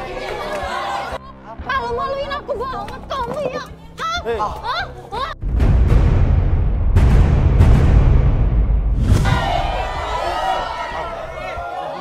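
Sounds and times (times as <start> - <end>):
overlapping voices of commotion: 0.0 - 1.3, 9.2 - 12.0.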